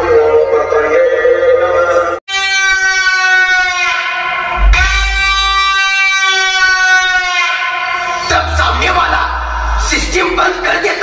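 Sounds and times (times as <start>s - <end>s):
horn blast through sound system: 2.3s - 10.6s.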